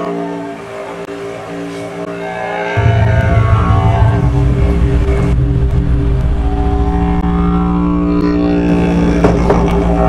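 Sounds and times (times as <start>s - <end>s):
didgeridoo drone: 0.0s - 10.0s.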